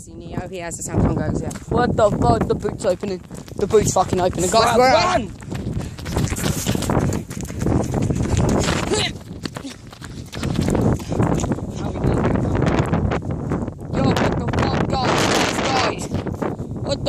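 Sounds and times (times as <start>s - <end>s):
wind buffeting microphone: 0.0s - 17.0s
footfalls of people running: 1.5s - 13.8s.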